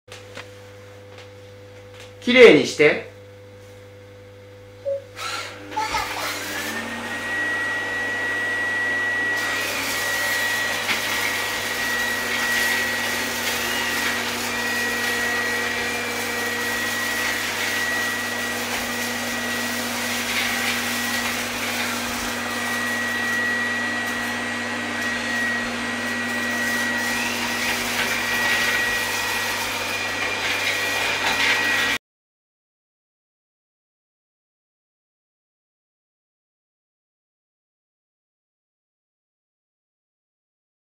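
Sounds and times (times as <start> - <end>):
robot vacuum motor whine: 4.9 - 32.0.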